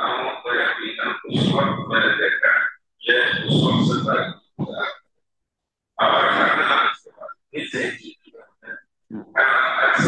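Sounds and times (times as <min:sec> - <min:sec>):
man speaking into microphone: 0:00.0 - 0:05.0, 0:06.0 - 0:10.0.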